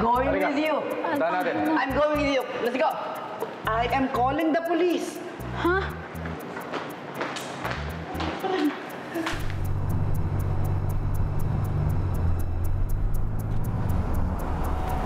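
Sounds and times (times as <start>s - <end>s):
tense music with ticking beat: 0.0s - 15.0s
suv engine running: 9.4s - 15.0s.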